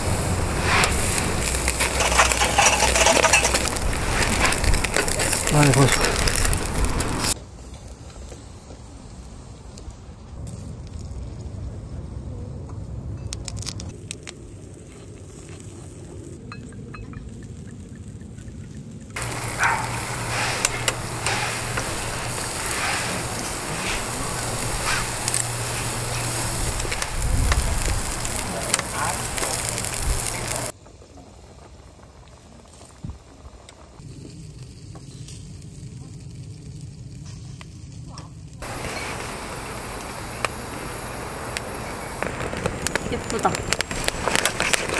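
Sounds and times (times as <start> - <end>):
meat sizzling on a grill: 0.0 - 11.4, 19.2 - 30.8, 32.3 - 44.9
fire crackling: 0.0 - 44.9.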